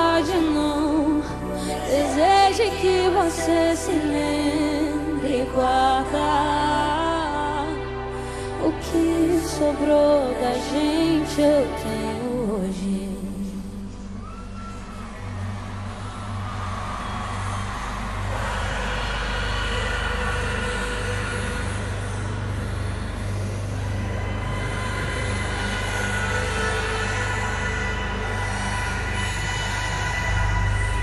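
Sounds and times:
low bass drone: 0.0 - 31.0.

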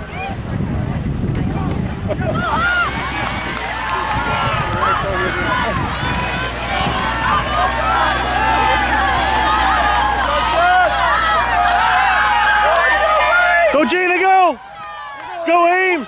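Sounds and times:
wind buffeting microphone: 0.0 - 12.8
crowd shouting and cheering: 1.5 - 16.0.

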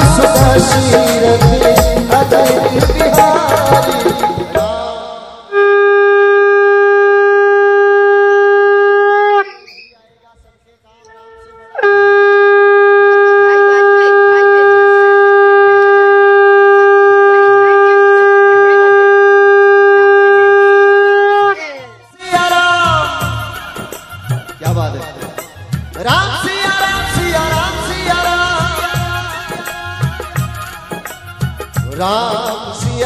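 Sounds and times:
conch shell blasts: 26.9 - 30.4.

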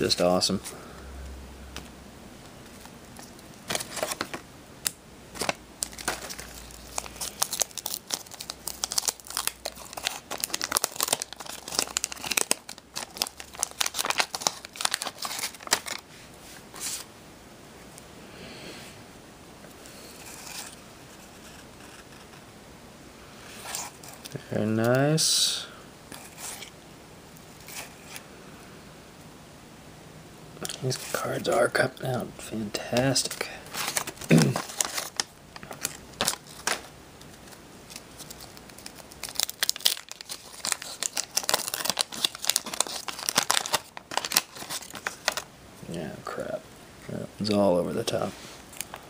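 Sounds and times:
wrapper tearing and crinkling: 5.4 - 16.0, 33.2 - 45.5.

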